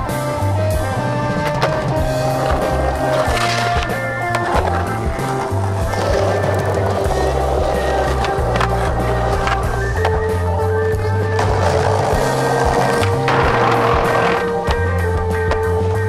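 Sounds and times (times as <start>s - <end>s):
loud background music: 0.0s - 16.0s
skateboard clacks: 0.0s - 16.0s
skateboard wheels rolling on pavement: 0.0s - 16.0s.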